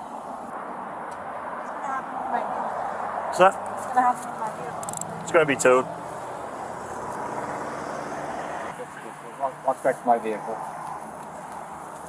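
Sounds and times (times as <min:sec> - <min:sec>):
road traffic rumble and hiss: 0:00.0 - 0:12.0.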